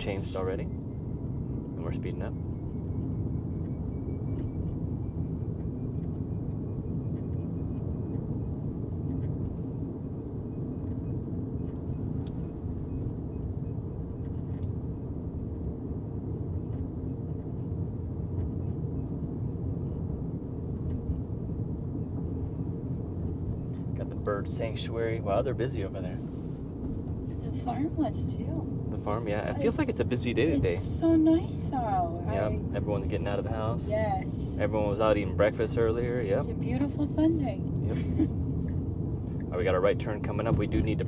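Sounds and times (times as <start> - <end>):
road and tyre rumble: 0.0 - 41.0.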